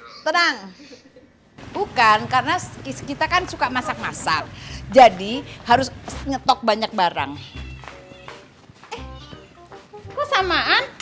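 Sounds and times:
quiet background music: 1.8s - 11.0s
cat meowing: 7.4s - 9.6s.

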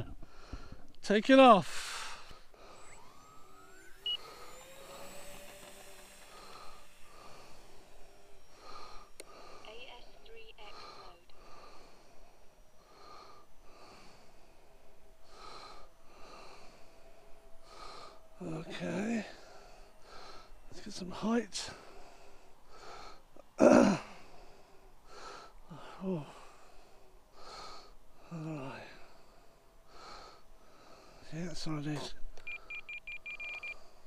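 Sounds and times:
soft breathing: 0.0s - 1.0s, 1.7s - 18.4s, 19.2s - 20.8s, 21.6s - 31.4s
model plane electric motors whining: 1.7s - 9.6s, 11.2s - 25.6s, 26.3s - 34.0s.

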